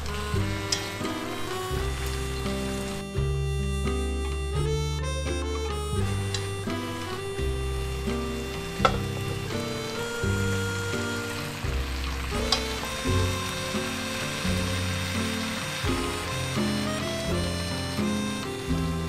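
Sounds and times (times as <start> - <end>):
vegetables sizzling in a wok: 0.0 - 3.4, 6.6 - 19.0
chopsticks clicking against pan: 0.7 - 0.9.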